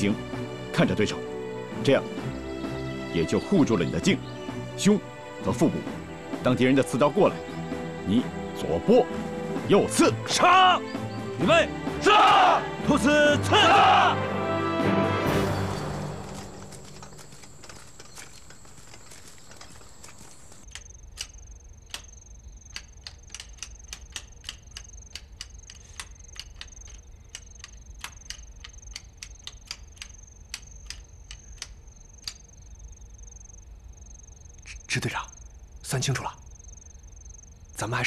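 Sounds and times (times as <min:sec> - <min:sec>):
crickets chirring: 0:00.0 - 0:13.4, 0:15.3 - 0:38.0
abacus beads clicking: 0:16.4 - 0:32.8.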